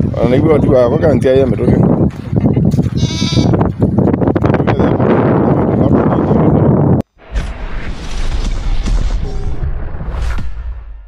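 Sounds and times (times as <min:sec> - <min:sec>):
goat bleating: 0:03.0 - 0:03.6.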